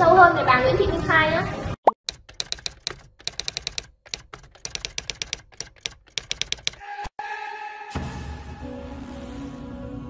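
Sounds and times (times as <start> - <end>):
typewriter key clicks: 2.1 - 6.8.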